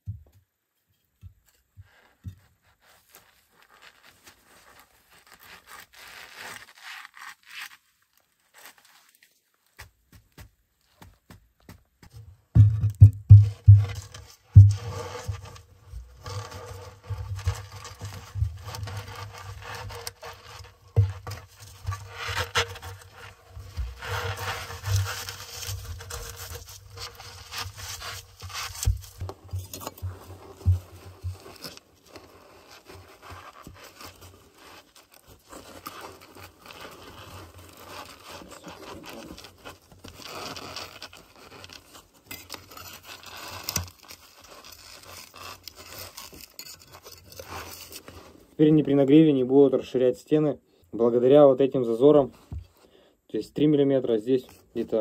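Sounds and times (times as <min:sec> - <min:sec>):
bricks scraping and knocking: 0:12.6 - 0:15.5, 0:16.1 - 0:31.8.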